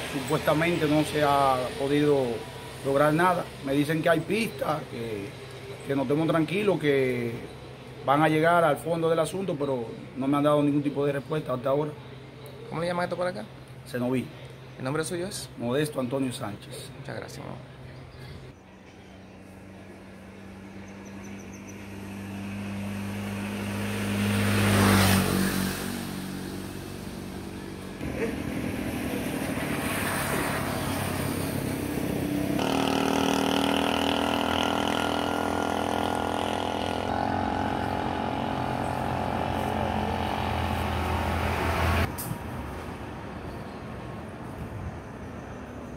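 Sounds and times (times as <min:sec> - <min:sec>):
engine running: 0:19.2 - 0:42.2
vehicle passing: 0:19.3 - 0:43.5.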